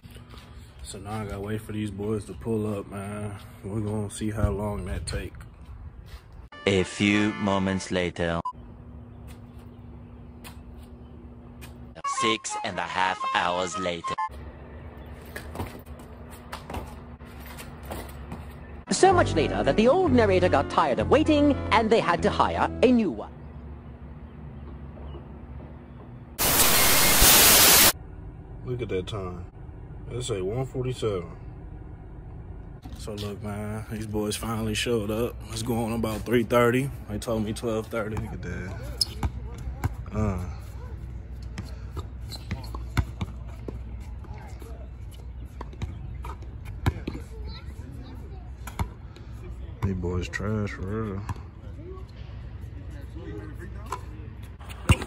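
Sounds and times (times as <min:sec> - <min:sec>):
static hiss burst: 0:26.4 - 0:28.0
low steady rumble: 0:28.0 - 0:35.9
basketball bouncing: 0:39.0 - 0:40.0, 0:41.5 - 0:43.5.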